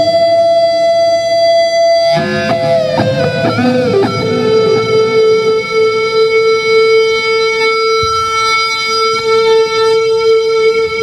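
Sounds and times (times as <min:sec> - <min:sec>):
electric guitar sustained note: 0:00.0 - 0:11.0.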